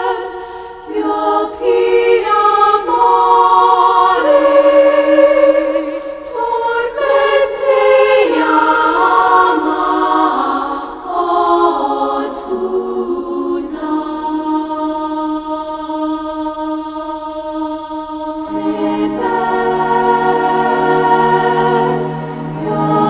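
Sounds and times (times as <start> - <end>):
choir singing held notes: 0.0 - 23.0.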